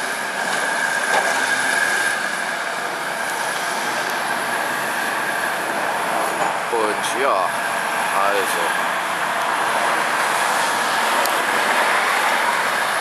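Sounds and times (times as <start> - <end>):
high-pitched squeal: 0.0 - 13.0.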